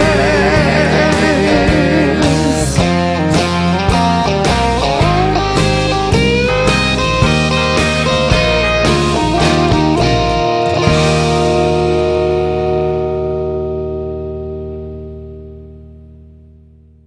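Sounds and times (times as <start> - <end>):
country rock band playing: 0.0 - 16.0.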